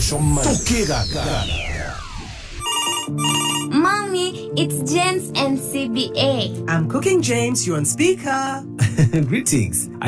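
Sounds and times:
falling sweep: 0:00.0 - 0:02.7
telephone ringing: 0:02.6 - 0:04.0.

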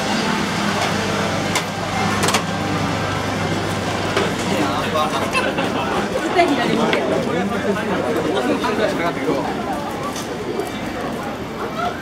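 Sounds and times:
motor vehicle humming: 0:00.0 - 0:08.4
street noise: 0:00.0 - 0:12.0.

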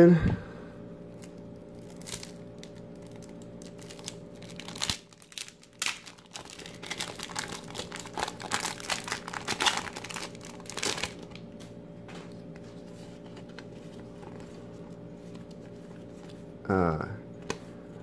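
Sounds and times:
wrapper crinkling and tearing: 0:01.1 - 0:11.5.

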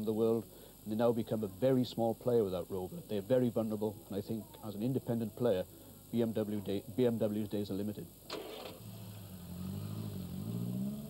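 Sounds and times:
small car engine starting and running: 0:08.3 - 0:11.0.

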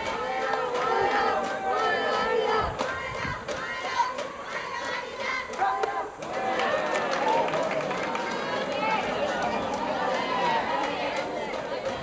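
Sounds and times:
crowd shouting and calling out: 0:00.0 - 0:12.0.

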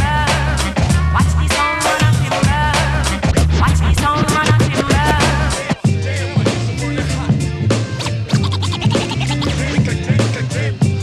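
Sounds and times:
hip-hop beat with bass and drums: 0:00.0 - 0:11.0
turntable scratching: 0:01.9 - 0:05.9, 0:07.9 - 0:09.9.

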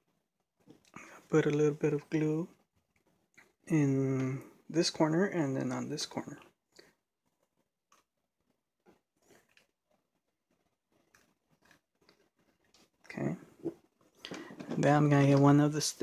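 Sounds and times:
man's voice: 0:14.6 - 0:16.0.

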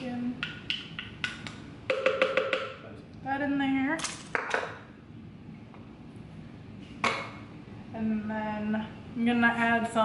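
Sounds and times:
kitchen items knocking on counter: 0:01.9 - 0:02.7.

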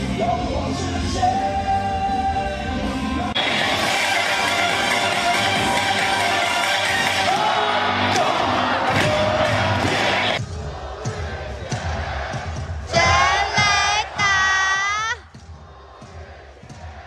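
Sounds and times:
stadium cheer music: 0:00.0 - 0:17.0
crowd noise: 0:02.0 - 0:17.0.

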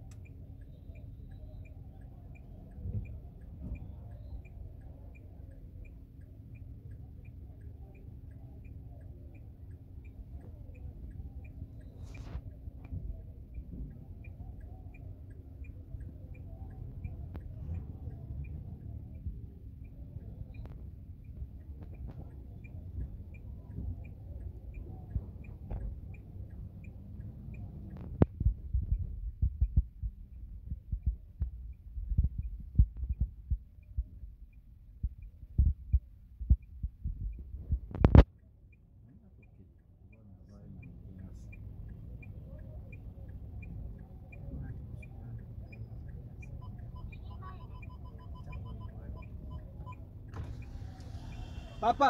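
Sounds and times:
faint steady tick: 0:00.0 - 0:52.0
low rumble inside car: 0:00.0 - 0:52.0
street noise: 0:00.0 - 0:52.0.

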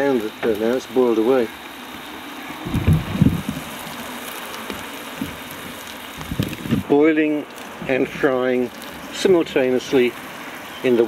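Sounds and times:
food sizzling in a pan: 0:00.0 - 0:11.0
low bumps: 0:02.6 - 0:04.1.

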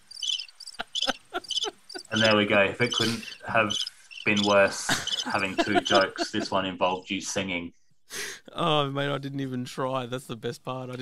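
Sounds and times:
crickets chirping: 0:00.0 - 0:06.4
short laughs: 0:00.8 - 0:03.7, 0:04.4 - 0:06.5.

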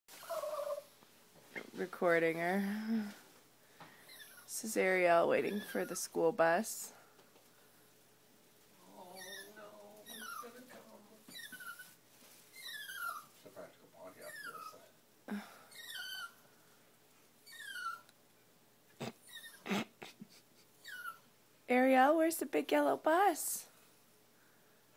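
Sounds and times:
small dog whining: 0:00.1 - 0:00.9, 0:04.1 - 0:04.5, 0:08.9 - 0:10.6, 0:11.3 - 0:13.4, 0:14.2 - 0:14.9, 0:15.6 - 0:16.4, 0:17.4 - 0:18.1, 0:19.0 - 0:19.9, 0:20.8 - 0:21.3.

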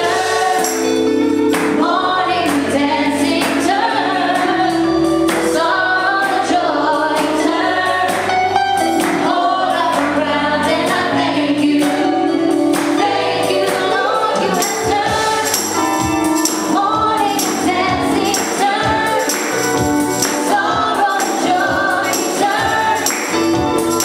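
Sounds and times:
tambourine shaken: 0:00.0 - 0:01.8, 0:12.7 - 0:24.0
band chords and bass: 0:00.0 - 0:24.0
women singing in harmony: 0:00.0 - 0:24.0.

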